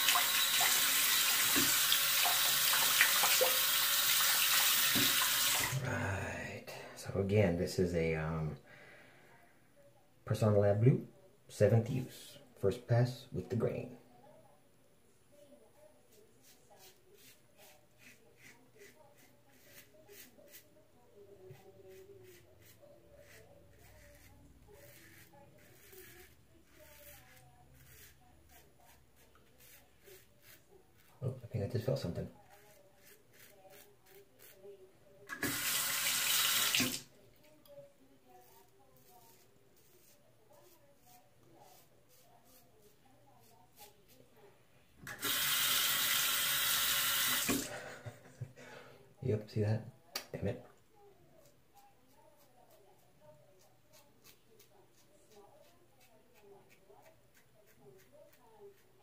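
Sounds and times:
faucet running: 0:00.0 - 0:05.8, 0:35.3 - 0:37.0, 0:45.1 - 0:47.7
razor scraping stubble: 0:16.1 - 0:20.7, 0:21.4 - 0:34.7, 0:38.3 - 0:44.2, 0:53.6 - 0:59.0.

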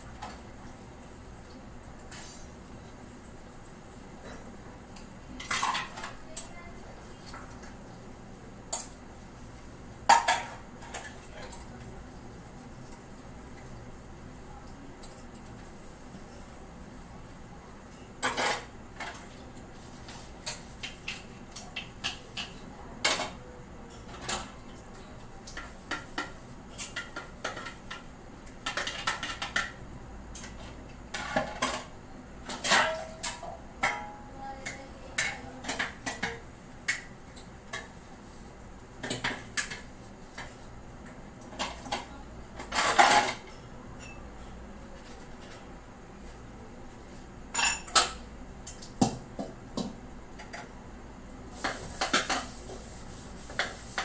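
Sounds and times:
dishes clattering in a sink: 0:04.2 - 0:06.5, 0:08.7 - 0:09.1, 0:10.0 - 0:11.9, 0:17.8 - 0:24.8, 0:25.4 - 0:38.1, 0:39.0 - 0:44.4, 0:47.5 - 0:50.7, 0:51.6 - 0:52.6.

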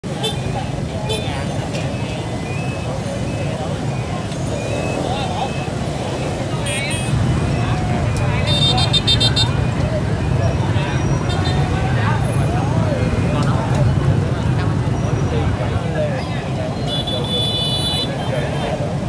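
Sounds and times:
crowd chatter: 0:00.0 - 0:19.0
motorbike and truck engines: 0:00.0 - 0:19.0.

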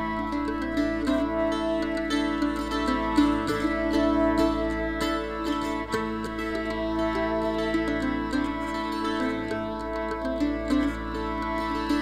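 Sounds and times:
bowed fiddle: 0:00.0 - 0:12.0
mandolin: 0:00.0 - 0:12.0
upright bass: 0:00.0 - 0:12.0.

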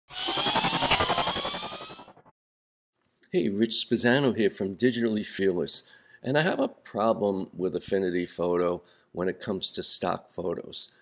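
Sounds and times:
buzzing stuttering rising sweep: 0:00.1 - 0:02.3.

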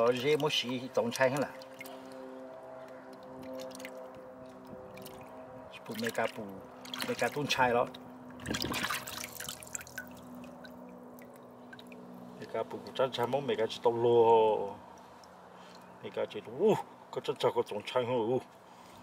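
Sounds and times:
water dripping into basin: 0:00.0 - 0:02.2, 0:02.8 - 0:07.4, 0:08.3 - 0:12.2
water sloshing in metal basin: 0:00.0 - 0:02.2, 0:03.1 - 0:12.5.

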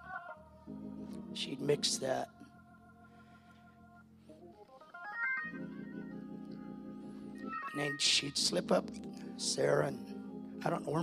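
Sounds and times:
organ playing chords: 0:00.0 - 0:11.0.

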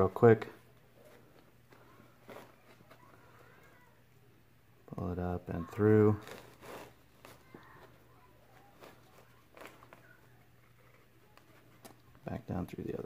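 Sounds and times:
strap sliding through buckle: 0:06.2 - 0:07.3.

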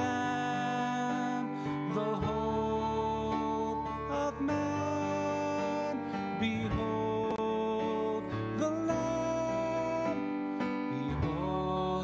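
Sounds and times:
worship music: 0:00.0 - 0:12.0.

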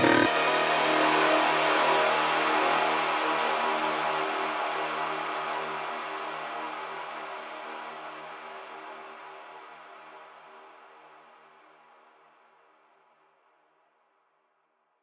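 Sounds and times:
noisy synth chord: 0:00.0 - 0:08.1.

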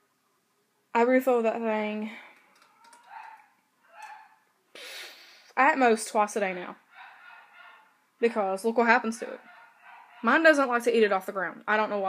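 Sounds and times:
faint dog barks: 0:02.7 - 0:04.5, 0:06.8 - 0:08.0, 0:09.3 - 0:10.5
short breath: 0:04.7 - 0:05.6.

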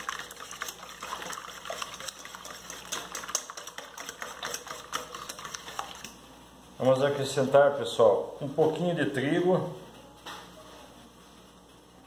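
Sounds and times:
whisk clicking in metal bowl: 0:00.0 - 0:06.2.

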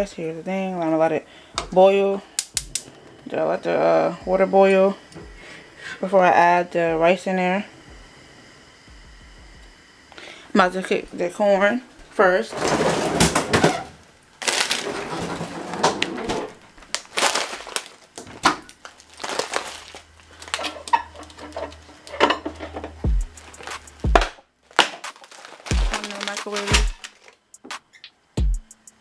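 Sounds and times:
deep bass drum hits: 0:07.9 - 0:08.1, 0:08.9 - 0:09.8, 0:23.0 - 0:23.4, 0:24.0 - 0:24.3, 0:28.4 - 0:28.7
frozen vegetable bags rustling: 0:12.4 - 0:22.8, 0:23.4 - 0:24.0, 0:24.6 - 0:27.4.

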